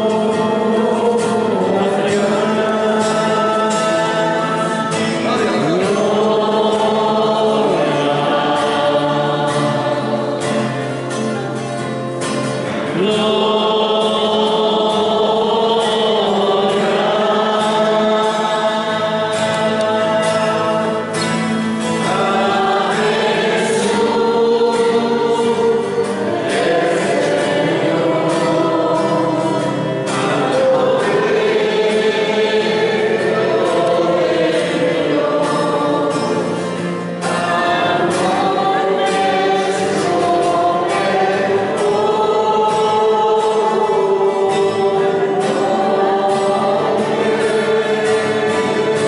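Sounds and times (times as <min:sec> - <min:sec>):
choir singing a hymn: 0:00.0 - 0:49.0.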